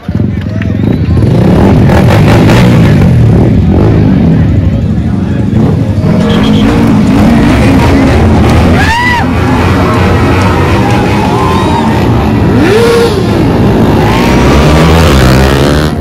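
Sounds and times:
motorcycle engines revving: 0.0 - 16.0.

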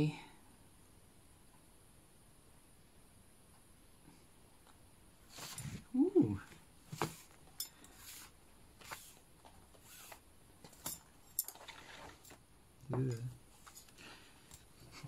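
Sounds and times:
person humming: 5.9 - 6.5.

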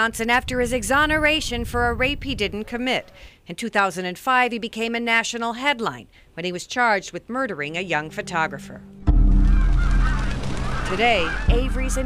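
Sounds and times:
deep droning music: 8.0 - 12.0
geese honking: 8.0 - 12.0.

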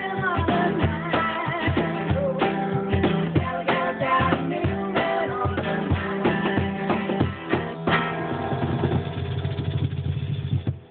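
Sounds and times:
cajon roll of low hits: 5.9 - 10.9.

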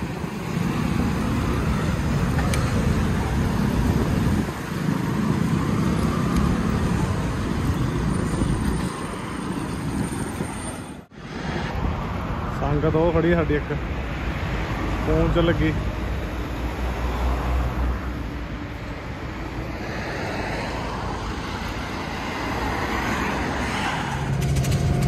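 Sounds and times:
motorcycle and car engines: 0.0 - 12.8, 13.9 - 25.0.

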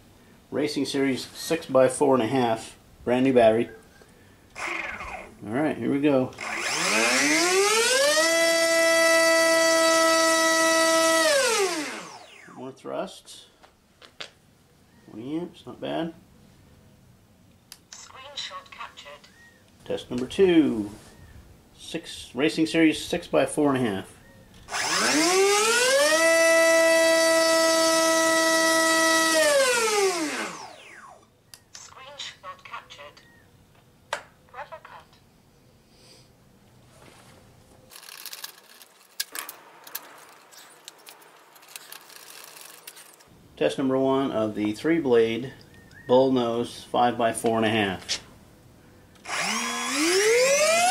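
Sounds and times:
electric motor propeller whine: 4.6 - 5.3, 6.4 - 12.6, 24.7 - 31.2, 49.2 - 50.9.

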